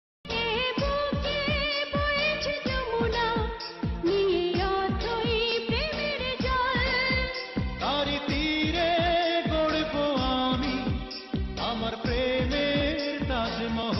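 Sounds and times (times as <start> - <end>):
woman singing with vibrato: 0.3 - 8.4.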